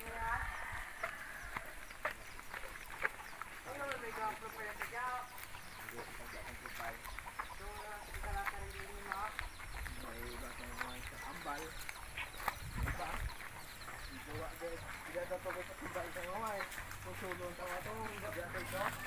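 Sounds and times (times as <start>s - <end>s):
chickens clucking: 0.0s - 19.0s
indistinct voices: 0.0s - 19.0s.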